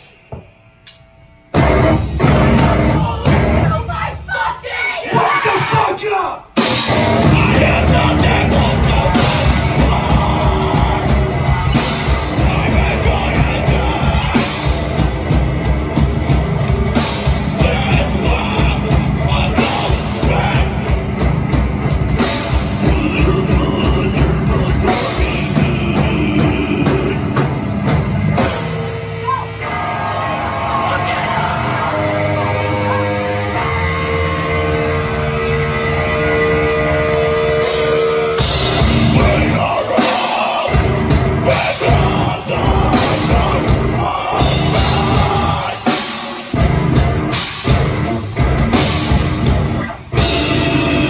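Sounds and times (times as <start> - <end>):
distorted guitars: 0.0 - 51.0
heavy rock band playing: 1.4 - 51.0
drums with cymbal crashes: 1.5 - 4.3, 5.1 - 29.6, 37.6 - 51.0
vocalist screaming: 2.8 - 6.5.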